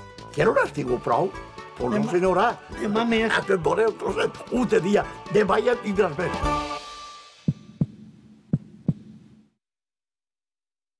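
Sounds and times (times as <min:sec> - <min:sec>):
heartbeat thumps: 0:07.5 - 0:09.6.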